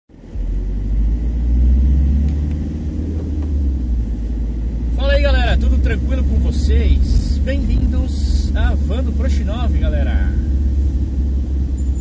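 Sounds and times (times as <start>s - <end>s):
van engine and road rumble: 0.1s - 12.0s
man's voice: 5.0s - 10.5s.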